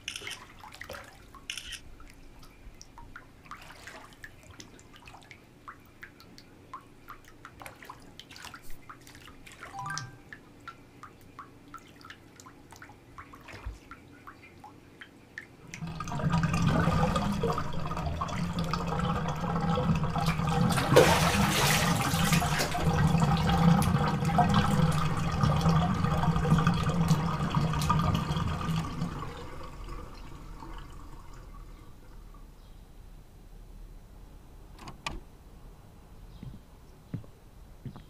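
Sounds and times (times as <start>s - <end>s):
water rushing and gurgling: 15.8s - 32.0s.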